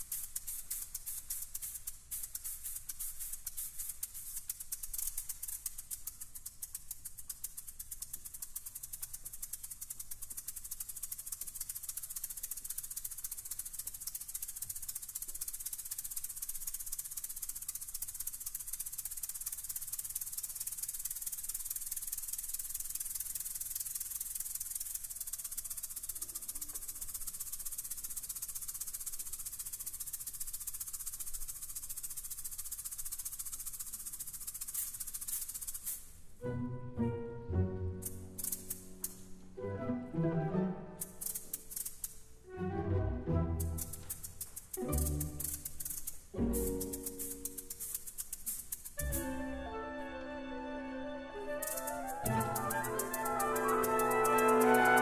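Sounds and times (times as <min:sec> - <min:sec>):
maracas rattling: 0:00.0 - 0:55.0.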